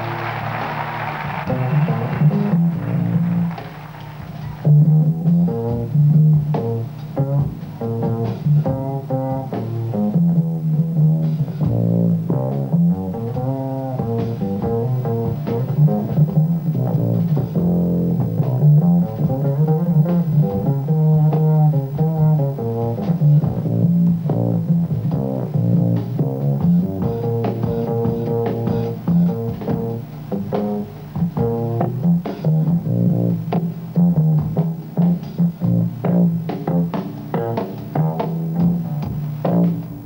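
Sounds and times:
drums and cymbals: 0.0 - 40.0
plucked double bass: 4.6 - 40.0.

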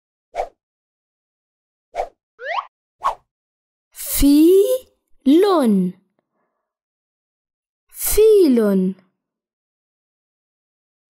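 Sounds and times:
cartoon plop: 2.4 - 2.7.

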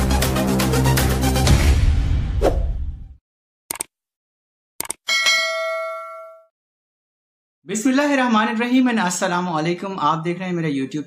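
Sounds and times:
bell ding: 5.1 - 6.5.

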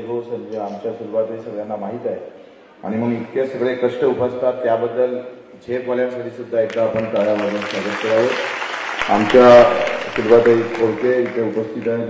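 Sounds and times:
man talking: 0.0 - 8.4, 9.0 - 12.0
audience applause: 6.8 - 12.0.

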